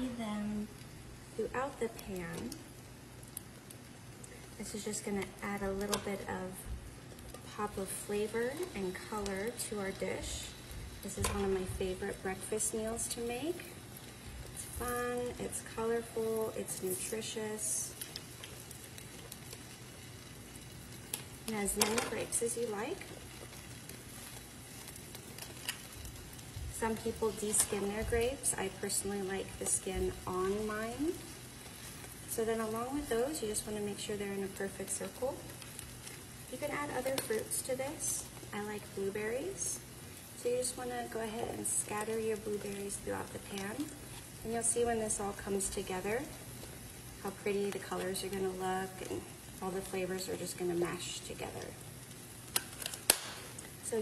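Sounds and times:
egg sizzling in a pan: 0.0s - 54.0s.

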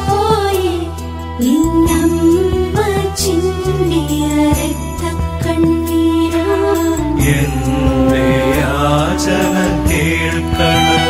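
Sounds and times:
sustained instrumental backing: 0.0s - 11.0s
chant-like hymn singing: 7.2s - 11.0s.

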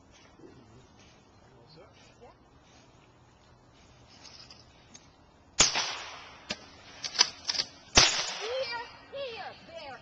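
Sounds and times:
loud shotgun shot: 5.6s - 6.6s, 8.0s - 8.6s.

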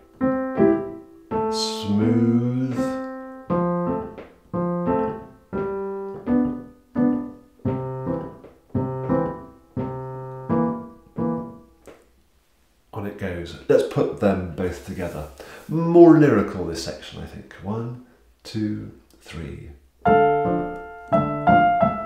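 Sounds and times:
piano bass notes and chords: 0.0s - 12.2s, 20.0s - 22.0s.

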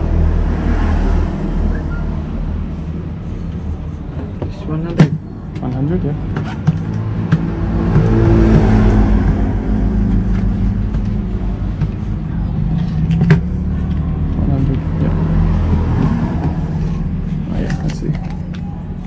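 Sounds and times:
vehicle engine running: 5.8s - 19.0s.

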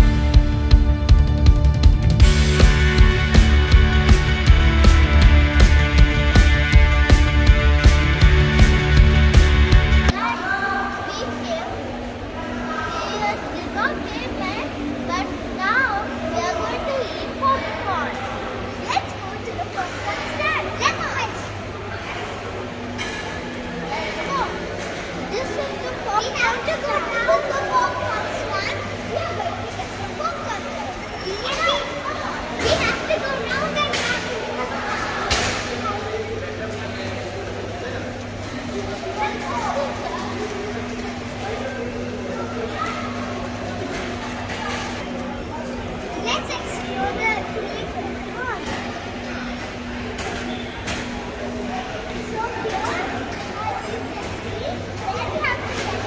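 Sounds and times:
steady low hum: 0.0s - 10.3s
children talking and exclaiming: 0.0s - 56.0s
indistinct chatter of people: 0.0s - 56.0s.

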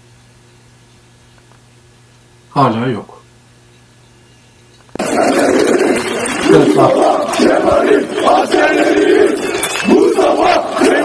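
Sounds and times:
crowd shouting slogans: 5.0s - 11.0s.

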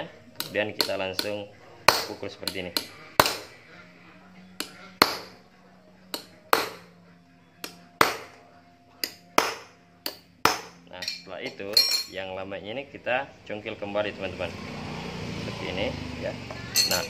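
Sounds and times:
hammer striking metal spanner: 9.0s - 12.2s, 16.7s - 17.0s.

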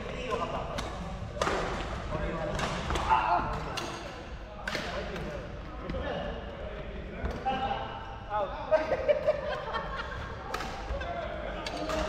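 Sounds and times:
players' voices: 0.0s - 12.0s.

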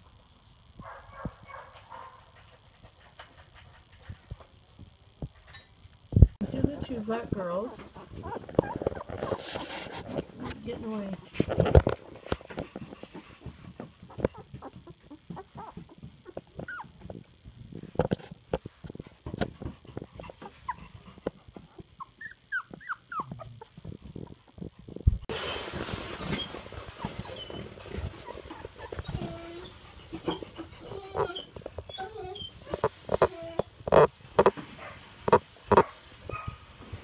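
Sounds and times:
hands handling puppies: 6.6s - 36.7s
puppies squeaking and whimpering: 7.7s - 10.9s, 14.0s - 17.2s, 20.0s - 24.6s, 25.3s - 34.1s.

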